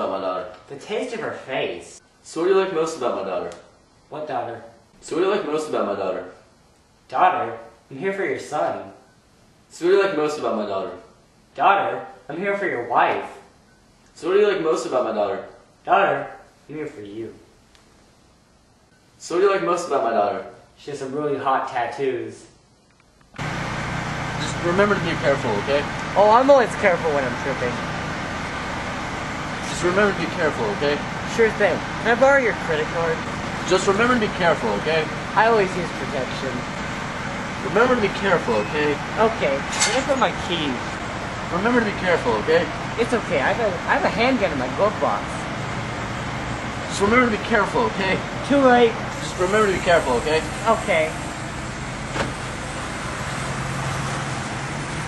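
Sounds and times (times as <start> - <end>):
man talking: 0.0 - 6.4, 7.1 - 9.0, 9.7 - 11.0, 11.6 - 13.4, 14.2 - 17.5, 19.2 - 22.5, 24.4 - 27.8, 29.6 - 36.7, 37.6 - 40.9, 41.5 - 45.2, 46.9 - 51.2
car engine idling: 23.4 - 55.0.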